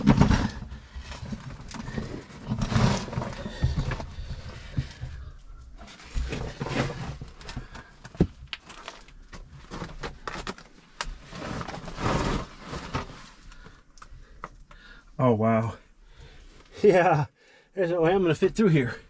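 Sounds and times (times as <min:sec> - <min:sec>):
body scraping against rock: 0:00.0 - 0:08.0, 0:11.1 - 0:13.7.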